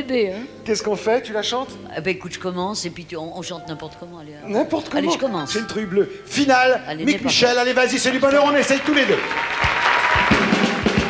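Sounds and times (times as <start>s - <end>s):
band playing: 4.4s - 11.0s
audience applauding: 7.7s - 11.0s
low drum beats: 9.6s - 11.0s.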